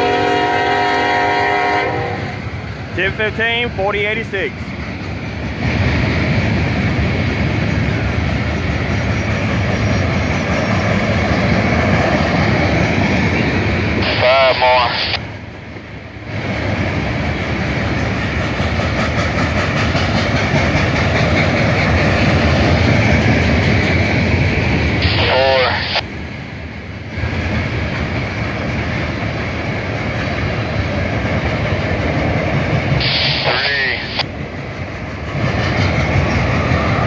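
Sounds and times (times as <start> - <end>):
freight train rolling past: 0.0 - 37.0.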